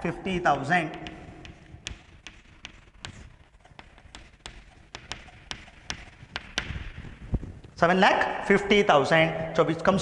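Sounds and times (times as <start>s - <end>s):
chalk tapping on chalkboard: 0.0s - 7.3s.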